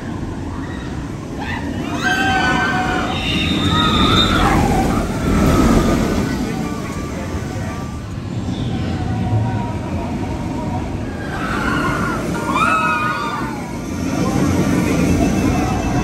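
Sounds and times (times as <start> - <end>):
roller coaster rumbling on track: 0.0 - 16.0
riders screaming: 0.5 - 6.8, 11.0 - 15.5.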